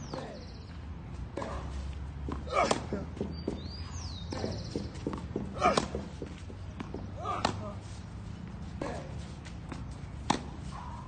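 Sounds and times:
tennis ball bouncing on clay: 0.0s - 7.8s, 8.4s - 10.8s
racket striking tennis ball: 1.3s - 3.7s, 4.3s - 7.8s, 8.8s - 10.8s.

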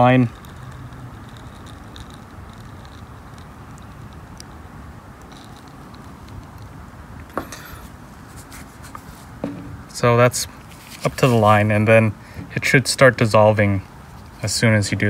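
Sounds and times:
brief rustle: 10.6s - 11.5s.

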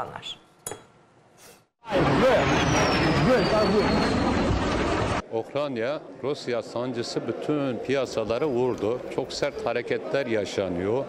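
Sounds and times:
loud rushing noise: 1.8s - 5.2s
falling whistle: 2.3s - 4.6s.

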